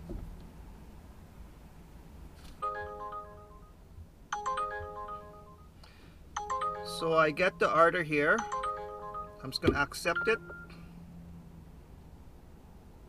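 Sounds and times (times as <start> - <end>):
smartphone melodic chime alert: 2.6 - 5.8, 6.4 - 10.9.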